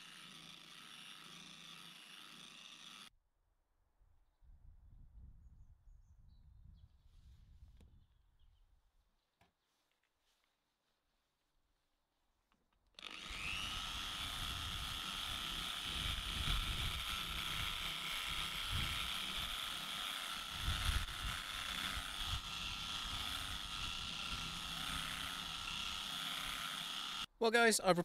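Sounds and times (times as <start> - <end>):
polishing machine motor whine: 13.0 - 27.3.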